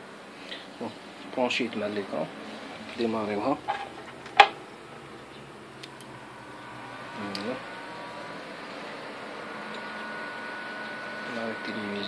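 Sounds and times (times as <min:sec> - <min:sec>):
computer fan and drive whirring: 0:00.0 - 0:12.0
faint rising whine: 0:00.0 - 0:12.0.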